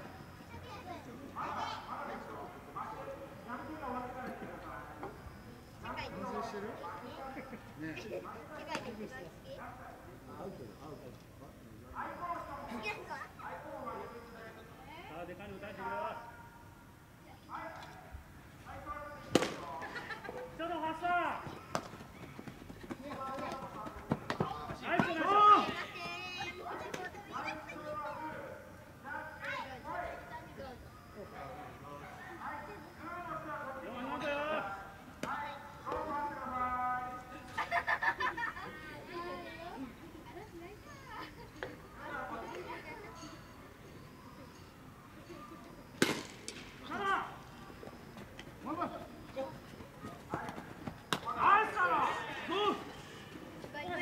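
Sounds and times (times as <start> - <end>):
people shouting calls: 20.5 - 30.5, 31.1 - 37.3, 46.8 - 54.0
players' voices calling out: 45.2 - 54.0.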